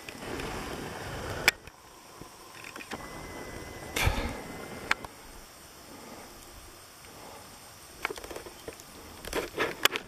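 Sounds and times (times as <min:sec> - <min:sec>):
light irregular clicks: 0:08.0 - 0:10.0.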